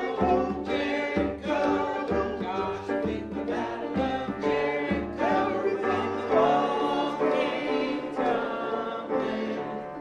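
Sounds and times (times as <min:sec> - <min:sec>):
banjo accompaniment: 0:00.0 - 0:10.0.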